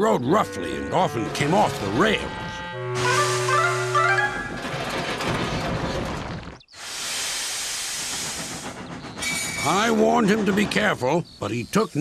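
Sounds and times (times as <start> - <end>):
steam hissing: 3.0 - 3.9, 6.7 - 10.3
steam engine clattering crash: 3.0 - 11.4.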